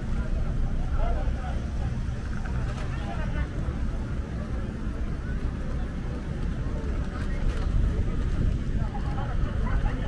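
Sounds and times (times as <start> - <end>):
crowd voices: 0.0 - 10.0
road traffic rumble: 0.0 - 10.0.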